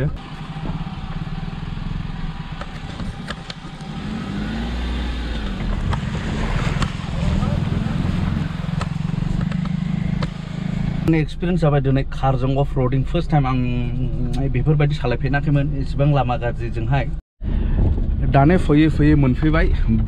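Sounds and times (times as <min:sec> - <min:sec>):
car engine: 0:00.0 - 0:19.4
clicks and knocks from wheels: 0:02.6 - 0:04.0.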